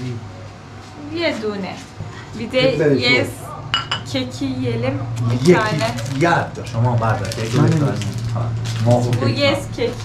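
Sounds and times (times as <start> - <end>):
coffee cup clinking on saucer: 3.7 - 4.1.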